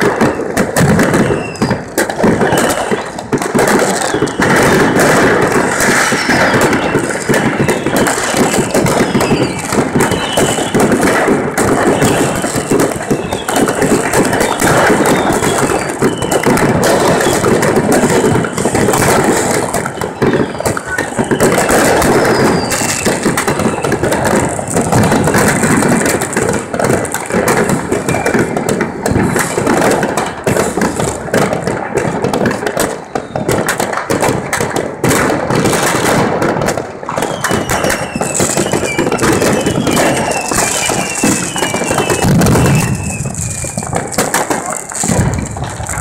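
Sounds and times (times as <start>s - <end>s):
falling firework whistles: 0.0s - 31.6s, 32.4s - 34.3s, 35.6s - 46.0s
fireworks bangs and crackling: 0.0s - 46.0s.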